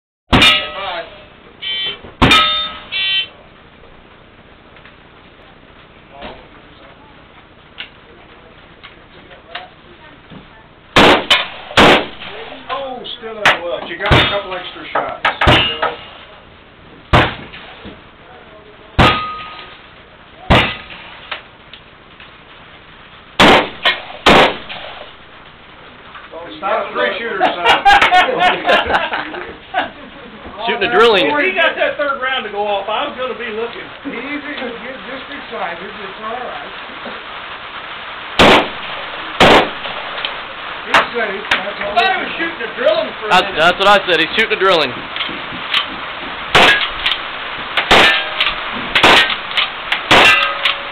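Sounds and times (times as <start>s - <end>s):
metallic ring of steel targets: 0.3s - 1.2s, 2.2s - 3.2s, 15.3s - 16.2s, 19.0s - 19.8s, 47.8s - 50.9s
short metallic ring: 0.4s - 3.3s, 50.2s - 50.9s
gunshots: 11.0s - 12.7s, 20.5s - 21.1s, 23.4s - 25.2s, 38.4s - 40.4s, 46.5s - 50.9s.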